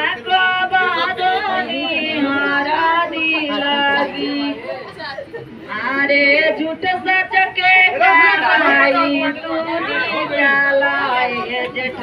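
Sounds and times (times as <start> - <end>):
women singing: 0.0 - 5.0, 5.6 - 12.0
background voices: 0.0 - 12.0.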